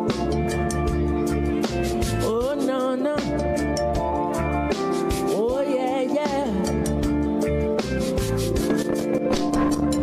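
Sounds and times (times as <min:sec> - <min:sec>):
live reggae band playing: 0:00.0 - 0:10.0.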